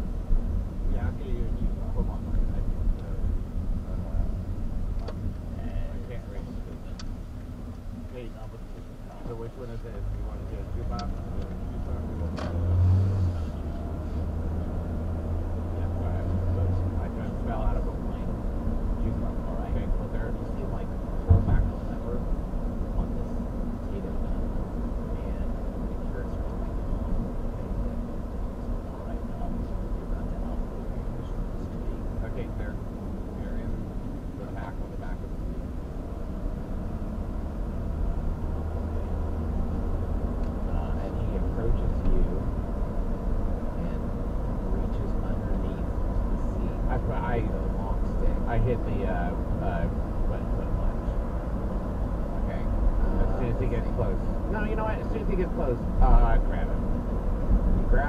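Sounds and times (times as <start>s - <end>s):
car road and engine rumble: 0.0s - 58.0s.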